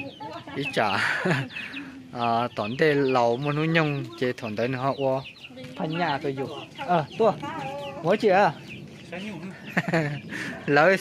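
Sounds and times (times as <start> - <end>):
women talking: 0.0 - 2.1, 3.7 - 8.3.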